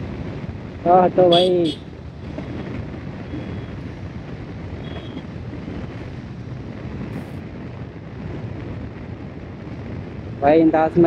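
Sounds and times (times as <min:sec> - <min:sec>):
motorcycle engine rumble: 0:00.0 - 0:11.0
wind buffeting microphone: 0:00.0 - 0:11.0.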